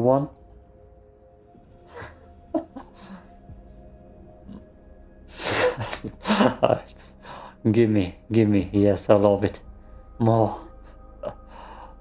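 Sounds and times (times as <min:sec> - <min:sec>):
man laughing: 0:01.9 - 0:03.3, 0:05.4 - 0:07.2.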